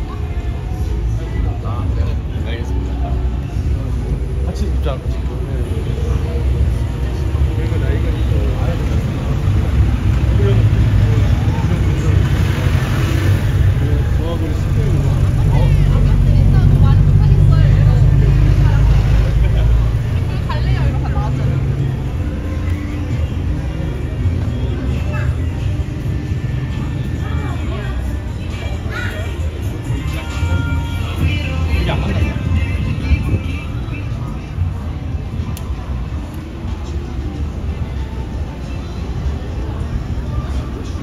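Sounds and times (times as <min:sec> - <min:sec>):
people's voices: 0:00.0 - 0:41.0.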